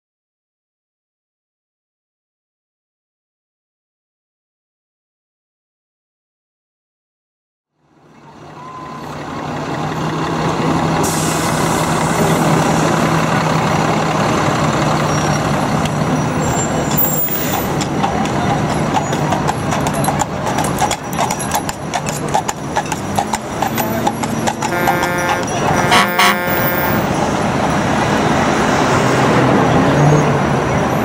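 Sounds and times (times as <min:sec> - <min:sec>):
city street traffic: 0:07.7 - 0:31.0
vehicle engine low hum: 0:07.8 - 0:28.7
horse hooves clip-clopping on road: 0:12.0 - 0:28.7.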